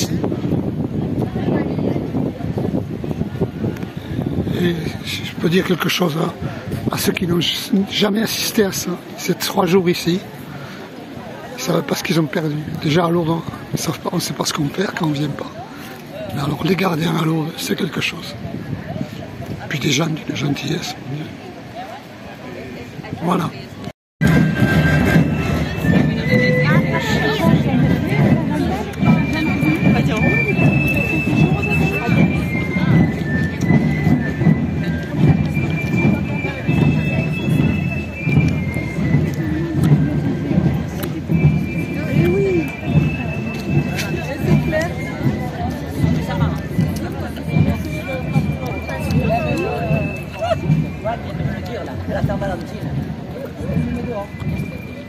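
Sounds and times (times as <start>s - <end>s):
crowd chatter: 0.0s - 55.0s
drum beat: 24.2s - 54.0s.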